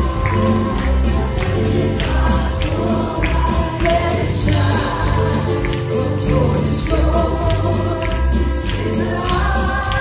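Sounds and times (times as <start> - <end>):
drums: 0.0 - 10.0
keyboard: 0.0 - 10.0
woman singing lead: 0.0 - 10.0.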